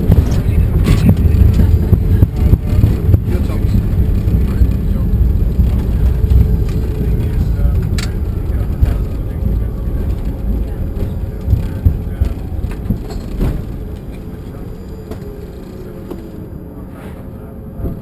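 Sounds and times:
jet engine and runway rumble: 0.0 - 18.0.

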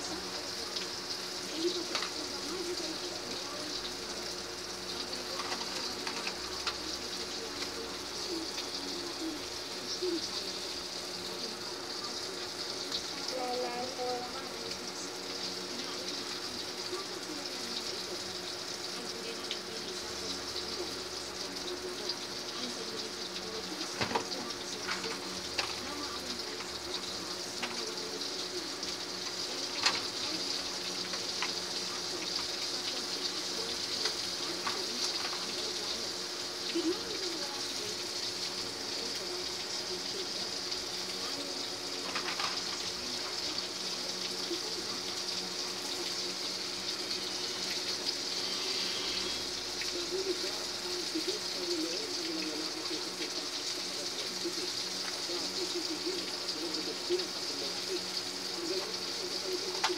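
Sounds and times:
steady hiss: 0.0 - 59.9.

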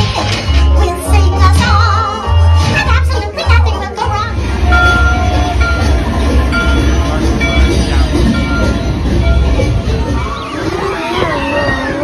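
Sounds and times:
music: 0.0 - 12.0
deep steady rumble: 0.8 - 12.0
whistle-like tones: 4.6 - 12.0.

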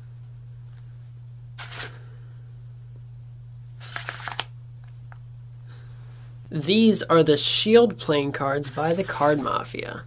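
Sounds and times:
steady low hum: 0.0 - 10.0
cardboard card case rustling: 3.8 - 4.4.

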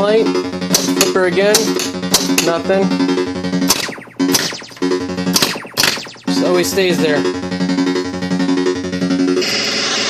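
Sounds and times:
steady low electronic tone: 0.0 - 9.6
electronic hits with falling sweep: 3.1 - 7.2.

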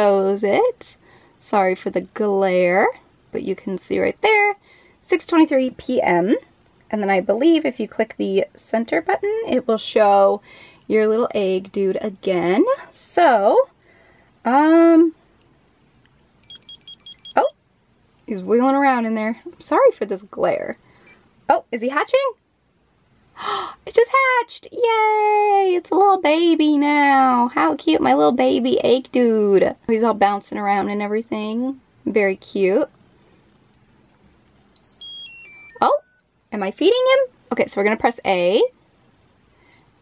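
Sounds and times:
high electronic beeps: 16.4 - 17.5, 34.8 - 36.2.

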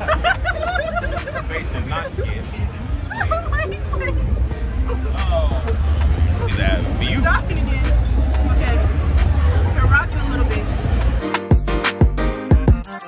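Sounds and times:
scattered voices: 0.0 - 11.2
faint music: 0.0 - 11.6.

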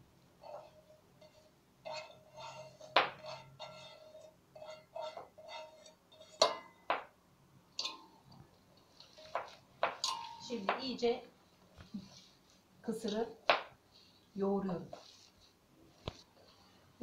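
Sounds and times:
bowls clinking and scraping: 0.4 - 7.1, 7.7 - 10.9
steel bowl ringing: 7.8 - 8.3, 10.0 - 10.7.

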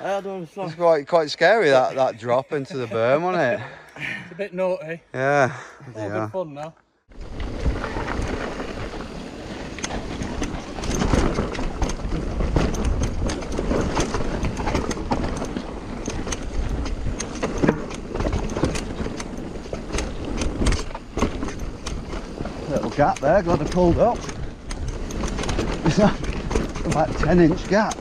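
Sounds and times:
bike clicks and rattles: 7.1 - 28.0
bike tyres rolling over dirt: 7.1 - 28.0.

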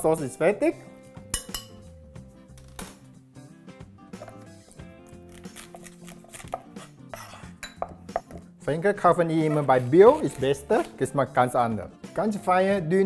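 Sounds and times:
soft background music: 0.0 - 13.0.

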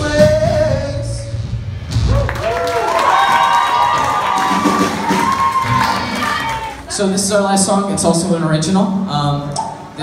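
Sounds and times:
audience cheering and whooping: 2.0 - 7.0
audience clapping: 2.1 - 6.9.

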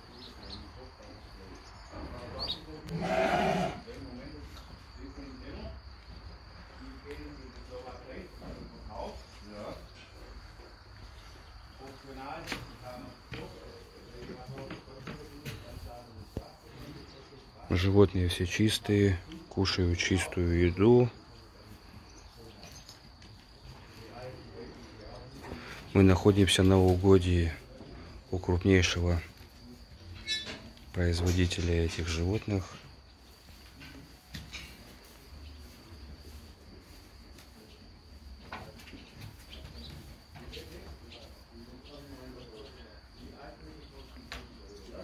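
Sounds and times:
high insect chirr: 0.0 - 45.0
sheep bleating: 2.9 - 3.9
sheep rustling on straw: 33.1 - 41.2.

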